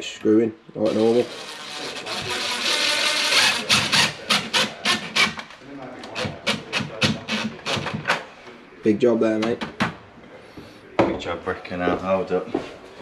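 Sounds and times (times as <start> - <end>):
cordless drill motor: 0.9 - 5.4.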